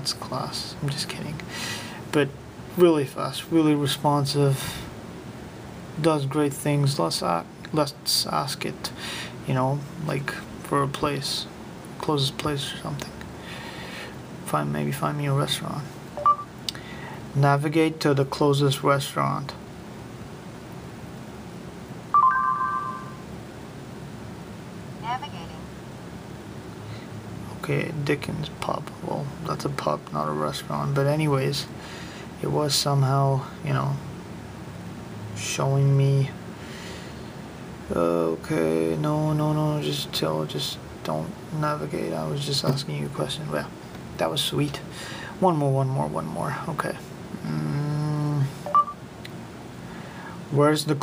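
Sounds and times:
short electronic chime: 0:22.2 - 0:23.2
man humming: 0:47.4 - 0:48.5.

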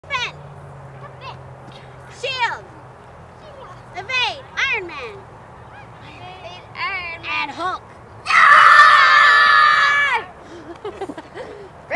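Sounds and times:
child screaming: 0:08.3 - 0:10.3.

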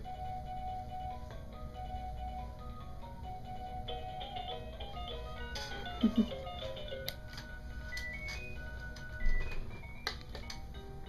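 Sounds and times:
electronic toy drum beeping melody: 0:07.9 - 0:10.9.

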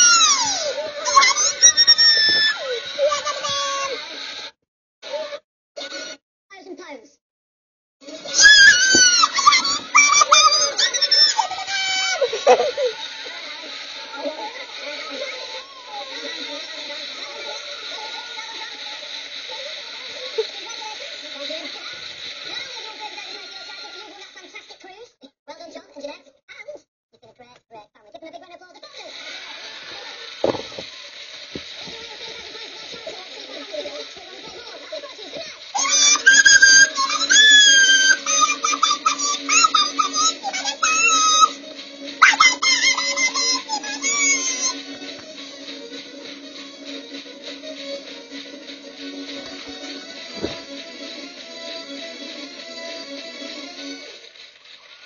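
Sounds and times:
squeaky pitch-shifted voice: 0:00.0 - 0:04.2, 0:08.2 - 0:13.0, 0:35.8 - 0:41.6, 0:42.2 - 0:45.1.

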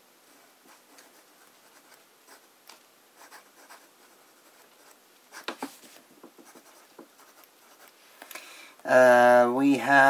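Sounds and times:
pen nib scratching paper: 0:00.3 - 0:02.5, 0:03.2 - 0:08.0.

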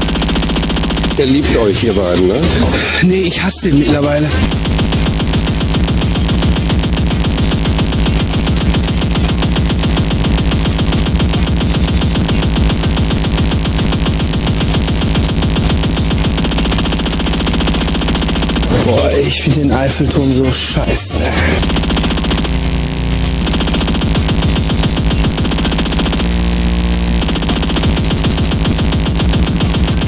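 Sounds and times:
fast distorted kick drums: 0:00.0 - 0:30.0
sustained synth tone: 0:00.0 - 0:30.0.

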